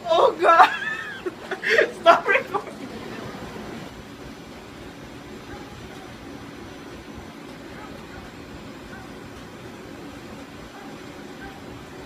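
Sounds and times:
steady background noise: 0:00.0 - 0:12.0
person laughing: 0:00.4 - 0:03.2.

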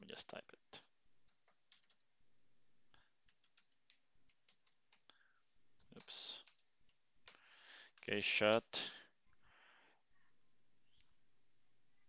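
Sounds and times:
computer keyboard clicking: 0:01.2 - 0:02.1, 0:03.2 - 0:05.2, 0:05.8 - 0:08.7.

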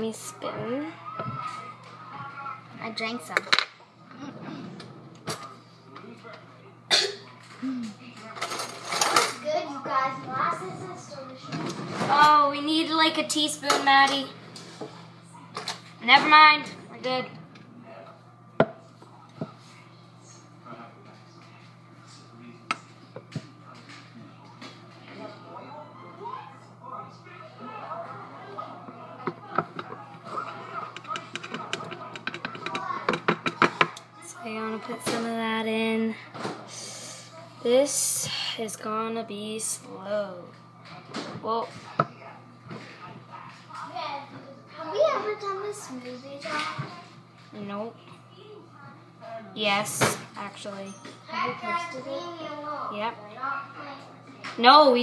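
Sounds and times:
quiet indistinct talk: 0:03.8 - 0:12.1, 0:17.5 - 0:35.0
child humming: 0:07.6 - 0:08.0
kitchenware clinking: 0:08.4 - 0:09.4, 0:29.2 - 0:34.0.

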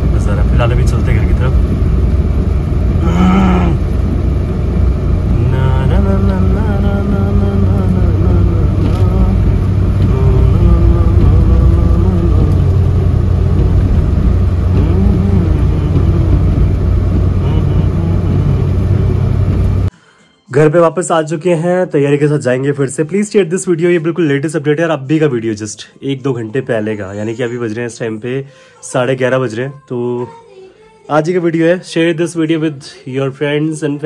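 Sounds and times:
car road and engine rumble: 0:00.0 - 0:19.9.

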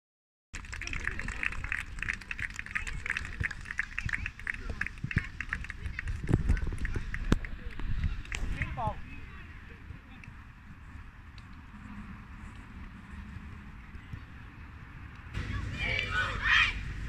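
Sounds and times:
wind rumbling on microphone: 0:00.6 - 0:17.0
children shouting and cheering: 0:15.4 - 0:17.0.

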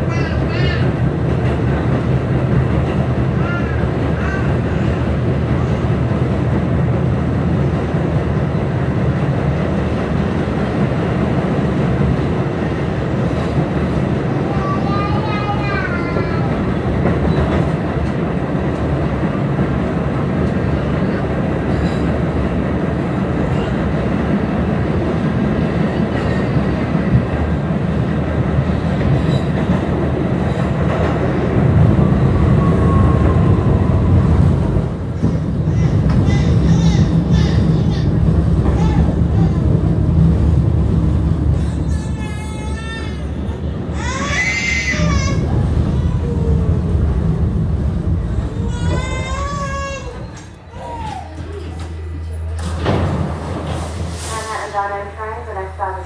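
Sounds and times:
subway wheels rumbling on rails: 0:00.0 - 0:56.0.

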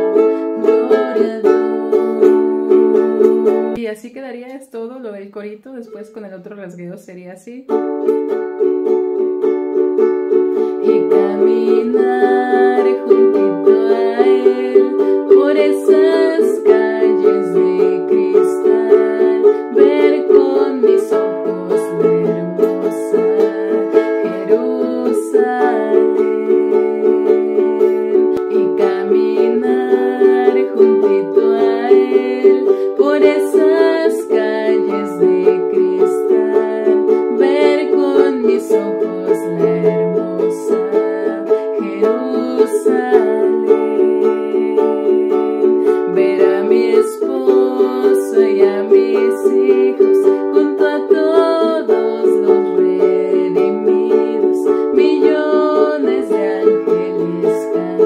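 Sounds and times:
ukulele strummed: 0:00.0 - 0:03.8, 0:07.7 - 0:58.0.

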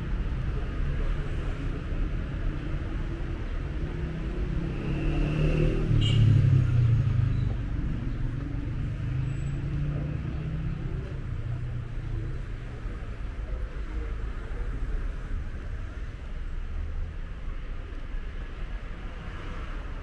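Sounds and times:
road traffic rumble: 0:00.0 - 0:20.0.

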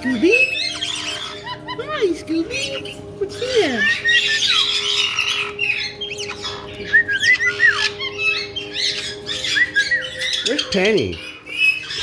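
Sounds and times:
parrots chirping and squawking: 0:00.0 - 0:12.0.

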